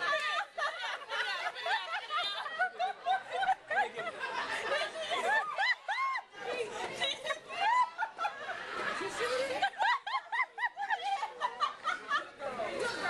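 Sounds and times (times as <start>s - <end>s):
people laughing: 0.0s - 13.0s
people talking: 0.0s - 13.0s.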